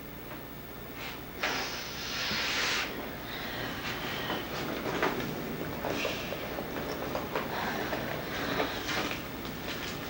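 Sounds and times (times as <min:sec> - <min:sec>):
breathy sniffles: 0:01.5 - 0:04.5.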